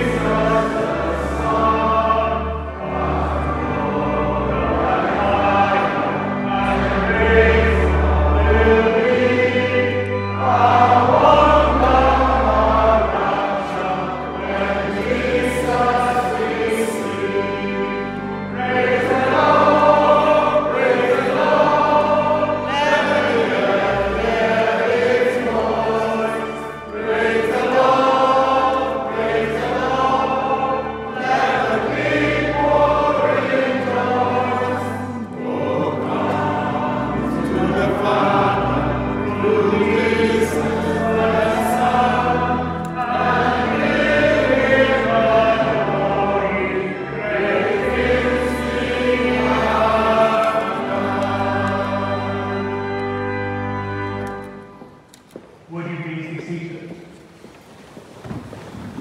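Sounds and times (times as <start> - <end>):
congregation singing a hymn: 0.0 - 57.2.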